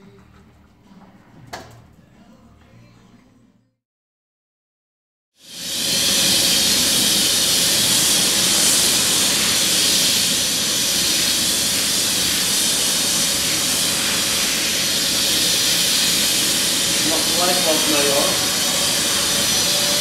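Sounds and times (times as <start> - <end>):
spray gun hissing: 5.4 - 20.0.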